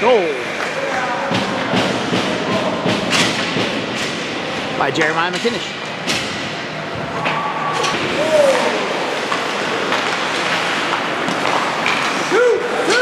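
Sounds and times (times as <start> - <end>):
crowd and arena noise: 0.0 - 13.0.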